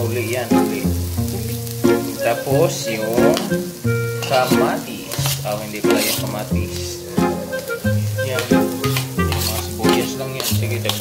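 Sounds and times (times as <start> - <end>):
background music with bass line: 0.0 - 10.9
vegetables sizzling in a wok: 0.0 - 11.0
metal spatula scraping plate: 5.2 - 6.4, 8.9 - 11.0.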